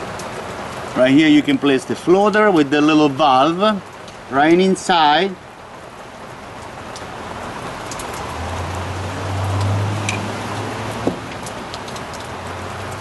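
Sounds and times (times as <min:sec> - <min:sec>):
steady rain hiss: 0:00.0 - 0:13.0.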